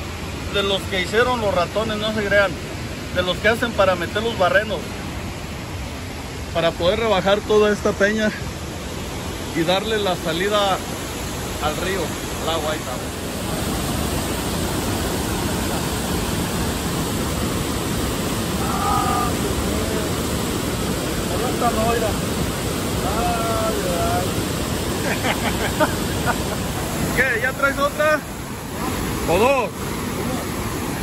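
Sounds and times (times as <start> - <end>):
water rushing out of dam outlet: 0.0 - 31.0.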